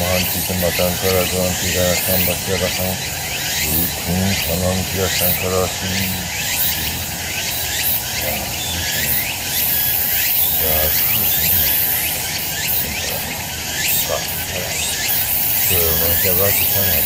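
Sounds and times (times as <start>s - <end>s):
man chanting quietly: 0.0s - 9.8s, 10.4s - 17.0s
steady high buzzing: 0.0s - 17.0s.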